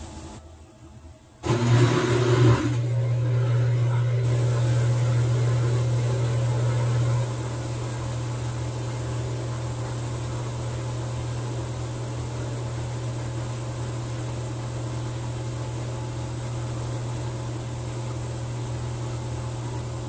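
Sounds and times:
washing machine motor hum: 0.0 - 20.0.

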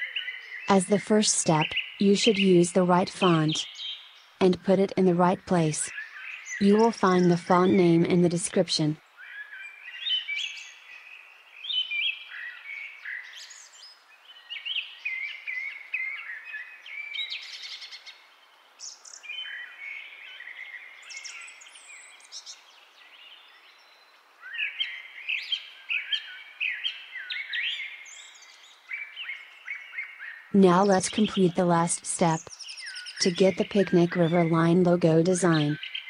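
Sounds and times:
birds chirping and singing: 0.0 - 36.0.

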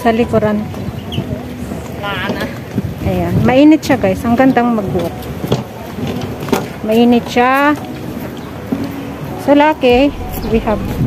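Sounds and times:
wind buffeting microphone: 9.8 - 11.0.

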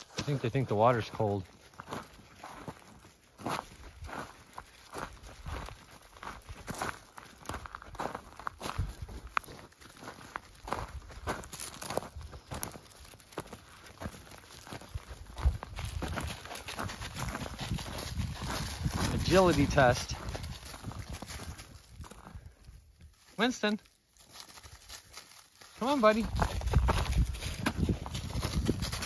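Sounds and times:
footsteps crunching on gravel: 0.0 - 29.0.

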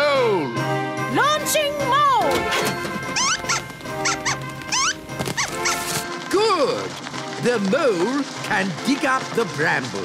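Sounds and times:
background music: 0.0 - 10.0
cartoon squeaky calls: 3.0 - 6.0
high rising chirps: 3.2 - 5.9.

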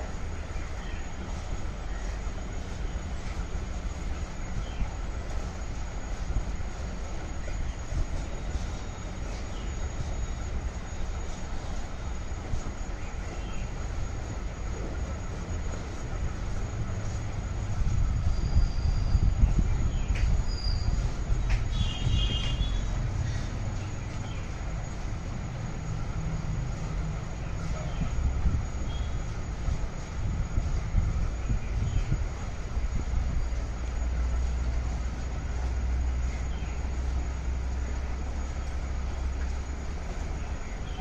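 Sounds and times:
steady low rumble: 0.0 - 41.0.

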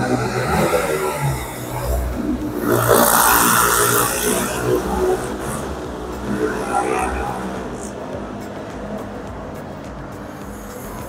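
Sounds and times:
hissing rush: 0.0 - 11.0
passing motor traffic: 0.0 - 11.0.

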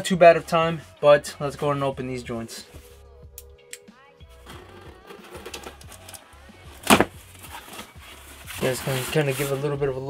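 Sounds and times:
quiet background music: 0.0 - 10.0
knife cutting packing tape: 4.4 - 6.2, 6.8 - 7.9
box popping open: 4.4 - 7.9
cardboard scraping: 4.4 - 9.9.

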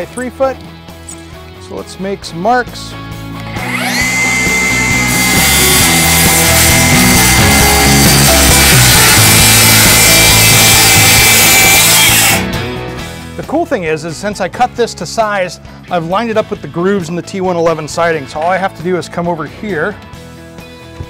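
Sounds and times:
circular saw cutting board: 3.5 - 12.5.

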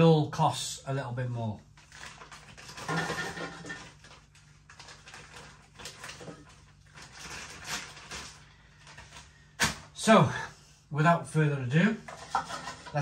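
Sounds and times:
plastic packet rustling: 1.8 - 9.9.

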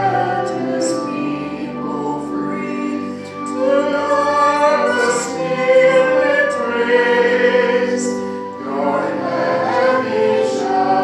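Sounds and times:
choir singing sacred music: 0.0 - 11.0.

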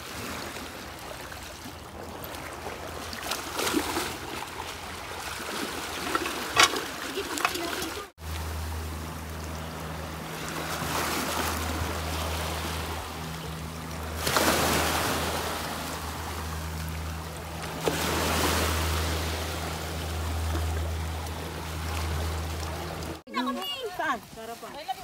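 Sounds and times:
steady low hum: 8.2 - 23.2
waves washing over rocks: 10.2 - 23.2.

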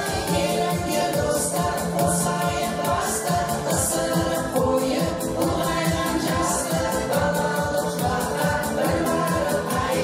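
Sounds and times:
instrumental backing with beat: 0.0 - 10.0
women singing together: 0.0 - 10.0.

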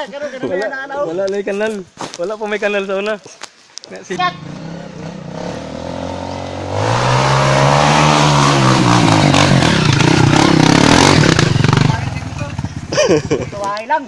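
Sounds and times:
dirt bike engine revving: 4.2 - 13.6.

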